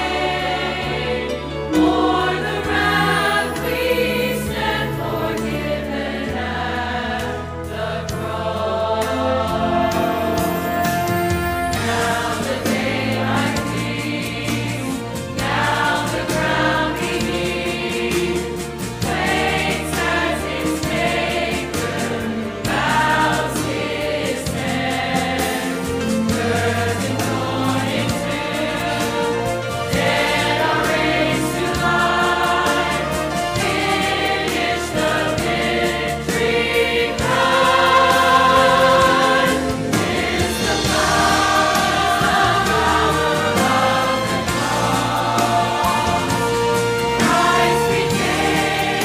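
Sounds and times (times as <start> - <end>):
choir singing: 0.0 - 49.0.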